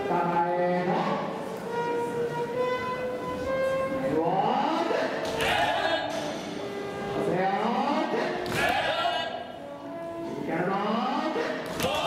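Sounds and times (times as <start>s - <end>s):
many voices shouting together: 5.4s - 6.1s, 8.5s - 9.4s.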